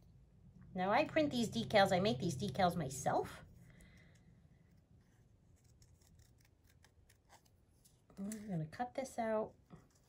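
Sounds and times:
scissors snipping paper: 0:03.8 - 0:08.6.

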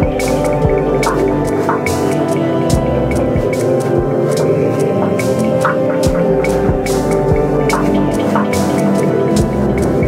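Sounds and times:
looped electronic beat: 0:00.0 - 0:10.0
synth pad chords: 0:00.0 - 0:10.0.

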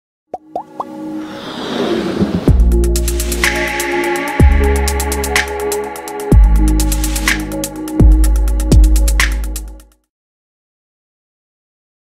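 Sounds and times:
synth riser: 0:00.8 - 0:07.2.

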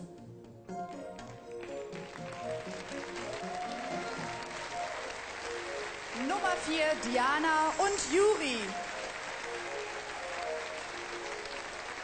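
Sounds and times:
audience applause: 0:01.6 - 0:12.0
instrumental music with held notes: 0:08.4 - 0:12.0.

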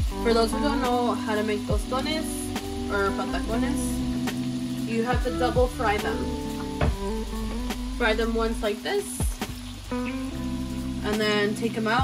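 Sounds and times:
background music with held notes: 0:00.0 - 0:12.0
plantain sizzling in hot oil: 0:00.0 - 0:12.0.

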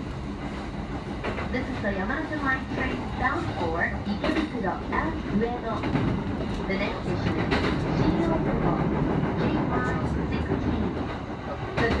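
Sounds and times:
train car low rumble: 0:00.0 - 0:12.0.

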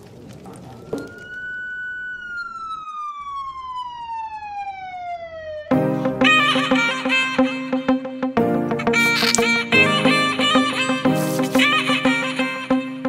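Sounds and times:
music with sitar: 0:05.8 - 0:13.0.

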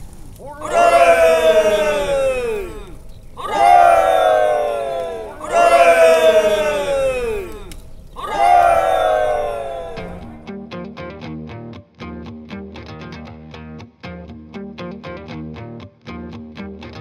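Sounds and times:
chorus of voices shouting: 0:00.3 - 0:10.5.

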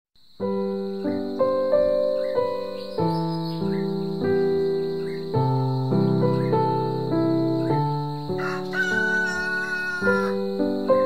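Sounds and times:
grand piano music: 0:00.4 - 0:11.0
rooster crowing: 0:08.4 - 0:10.5.

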